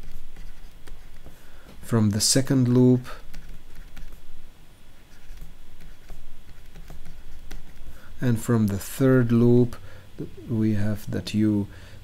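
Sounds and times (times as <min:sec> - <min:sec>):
stylus tapping and scratching on tablet: 0:00.0 - 0:01.4, 0:02.4 - 0:04.3, 0:05.0 - 0:08.0.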